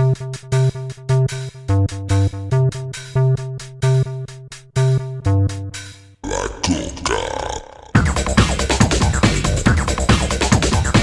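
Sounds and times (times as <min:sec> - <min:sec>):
growling warbling sampled sound: 0:06.2 - 0:08.1.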